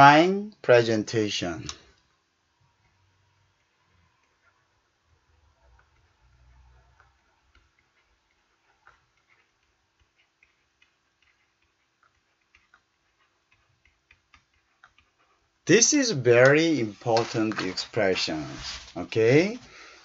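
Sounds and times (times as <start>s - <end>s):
stylus tapping on a tablet: 7.0s - 15.2s.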